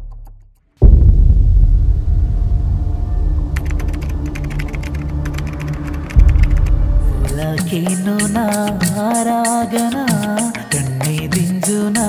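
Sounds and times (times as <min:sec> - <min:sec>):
sustained low drone: 0:00.8 - 0:07.6
deep boom: 0:00.8 - 0:07.8.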